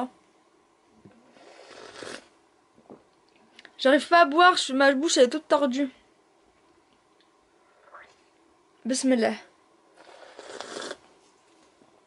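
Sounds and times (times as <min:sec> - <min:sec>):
noisy sip of milkshake: 0:10.0 - 0:11.0.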